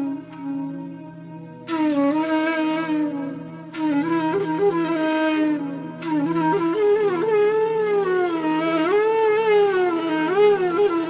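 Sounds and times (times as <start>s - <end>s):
flute long bending note: 0.0s - 11.0s.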